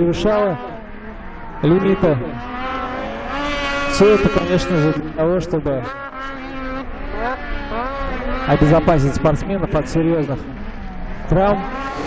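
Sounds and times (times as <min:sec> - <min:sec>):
snowmobile engine revving: 0:00.0 - 0:12.0.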